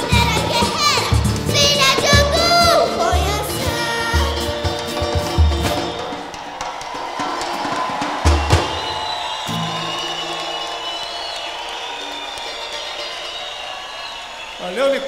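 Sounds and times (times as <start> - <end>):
heavy drum beat: 0.0 - 10.4
samba band music: 0.0 - 14.6
large crowd noise: 0.0 - 15.0.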